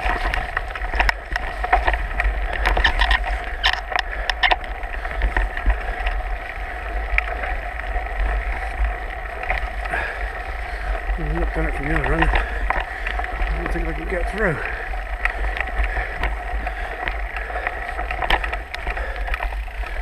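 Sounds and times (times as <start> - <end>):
bike clattering over rough ground: 0.0 - 20.0
mountain bike rattling: 0.0 - 20.0.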